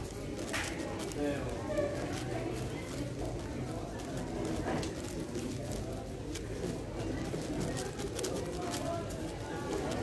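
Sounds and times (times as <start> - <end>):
low background murmur: 0.0 - 10.0.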